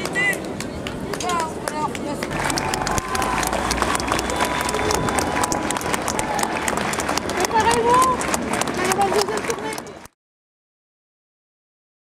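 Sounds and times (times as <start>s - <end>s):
people talking and calling out: 0.0s - 10.1s
crowd clapping: 0.0s - 10.2s.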